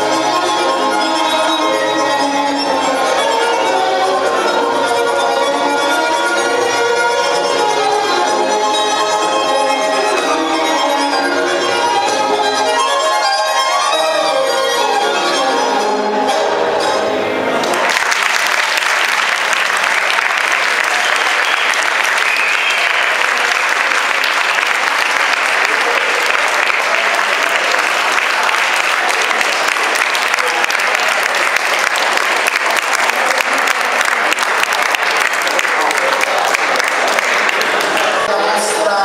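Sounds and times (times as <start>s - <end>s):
audience applauding: 17.6s - 38.3s
dance music: 37.8s - 39.0s.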